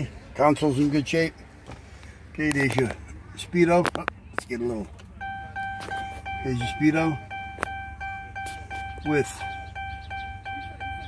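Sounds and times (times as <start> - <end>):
car warning chime pulsing: 5.2 - 11.0.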